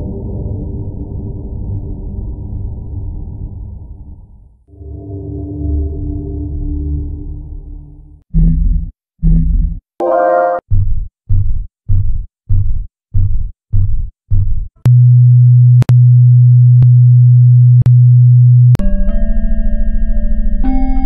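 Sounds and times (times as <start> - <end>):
pulsing low drone: 4.7 - 9.7, 14.9 - 21.0.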